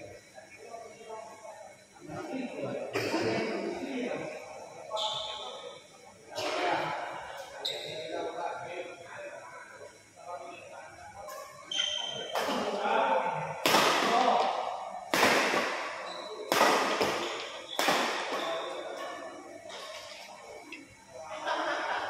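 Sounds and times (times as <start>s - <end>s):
spectators chatting: 0.0s - 8.9s
rackets hitting shuttlecock: 13.6s - 19.1s.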